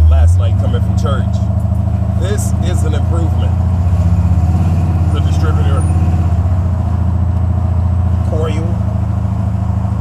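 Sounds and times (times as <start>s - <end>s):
low engine exhaust rumble: 0.0s - 10.0s.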